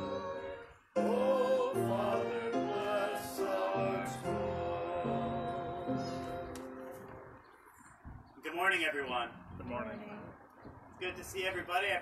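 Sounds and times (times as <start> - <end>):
hymn singing: 0.0 - 7.1
sustained accompaniment: 0.0 - 7.4.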